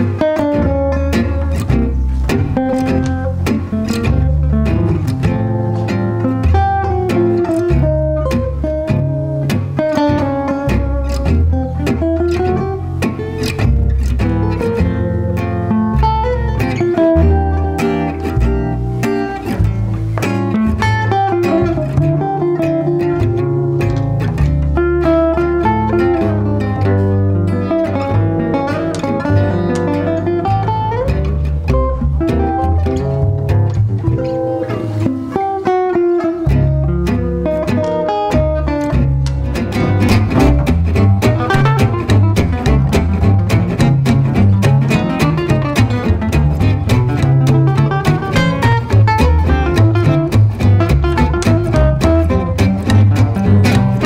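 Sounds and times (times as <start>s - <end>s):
acoustic guitar solo: 0.0s - 54.0s
plucked double bass: 0.0s - 54.0s
rhythm guitar strumming chords: 0.0s - 54.0s.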